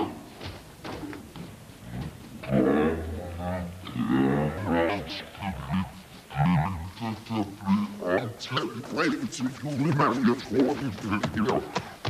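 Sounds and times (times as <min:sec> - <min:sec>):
steady low hum: 0:00.0 - 0:12.0
garbled voice from tape playback: 0:02.4 - 0:12.0.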